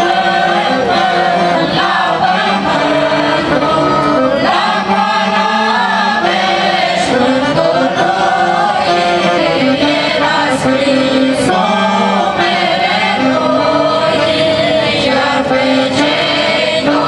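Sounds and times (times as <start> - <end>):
folk choir singing: 0.0 - 17.0.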